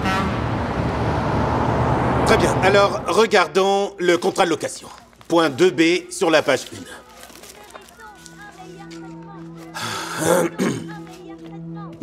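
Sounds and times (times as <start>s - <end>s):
cars passing: 0.0s - 3.4s.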